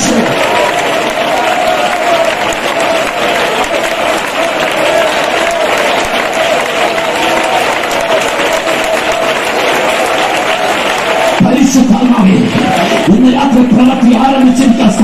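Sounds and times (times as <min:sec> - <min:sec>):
crowd clapping: 0:00.0 - 0:15.0.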